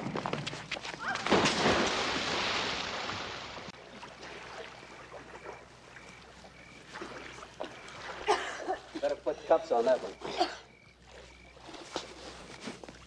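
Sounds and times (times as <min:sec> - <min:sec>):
water sloshing and lapping: 0:00.7 - 0:13.0
pool water splashing: 0:01.0 - 0:13.0.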